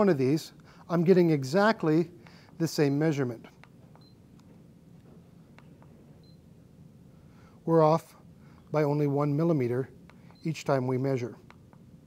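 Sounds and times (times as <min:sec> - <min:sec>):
high beep: 0:06.2 - 0:06.4.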